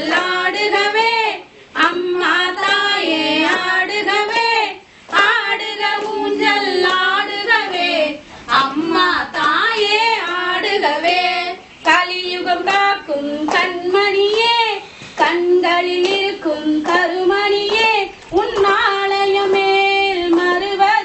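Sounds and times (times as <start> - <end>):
woman singing unaccompanied: 0.0 - 21.0.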